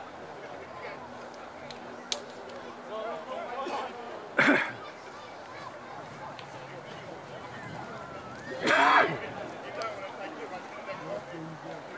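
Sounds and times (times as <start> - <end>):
faint voices: 0.0 - 11.9.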